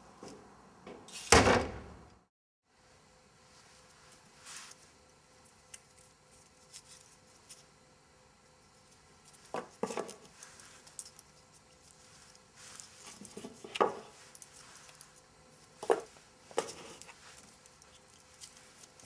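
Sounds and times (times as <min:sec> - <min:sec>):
door banging shut: 0:01.3 - 0:02.0.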